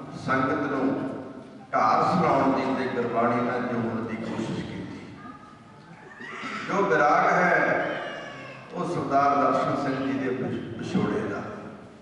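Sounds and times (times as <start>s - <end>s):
man speaking over public address: 0.0s - 5.2s, 6.6s - 12.0s.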